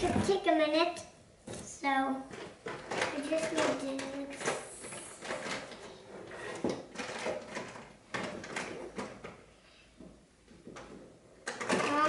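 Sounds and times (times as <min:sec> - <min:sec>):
art supplies knocking and rustling: 0:00.0 - 0:00.5, 0:01.4 - 0:12.0.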